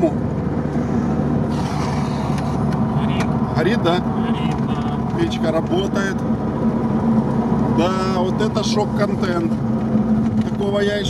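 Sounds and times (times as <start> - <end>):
car engine running: 0.0 - 11.0
road noise: 0.0 - 11.0.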